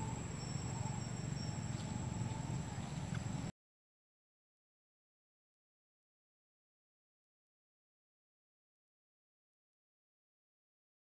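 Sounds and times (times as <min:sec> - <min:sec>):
high-pitched insect drone: 0:00.0 - 0:03.2
low outdoor rumble: 0:00.0 - 0:03.5.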